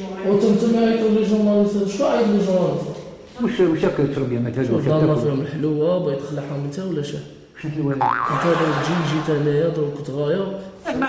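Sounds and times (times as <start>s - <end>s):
man talking: 7.6s - 10.6s
comic boing sound effect: 8.0s - 9.8s.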